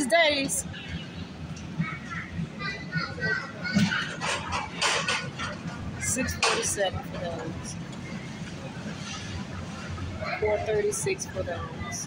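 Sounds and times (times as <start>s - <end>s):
indistinct voices: 0.0s - 12.0s
low store hum: 0.0s - 12.0s.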